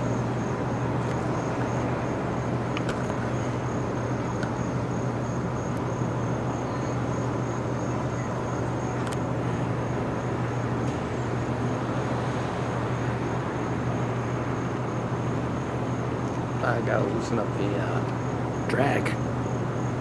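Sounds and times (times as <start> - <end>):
low mechanical hum: 0.0 - 20.0
outdoor noise: 0.0 - 20.0.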